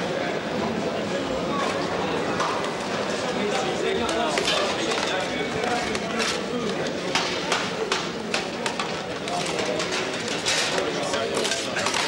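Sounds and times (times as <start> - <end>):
men talking: 0.4 - 12.0
metal trays and utensils clinking: 1.7 - 12.0.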